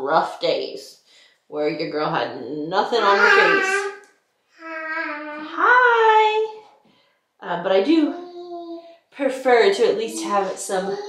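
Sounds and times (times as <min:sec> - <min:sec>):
toddler sing-song vocalizing: 0:03.0 - 0:04.0, 0:04.6 - 0:05.5, 0:08.1 - 0:08.8, 0:10.1 - 0:11.0.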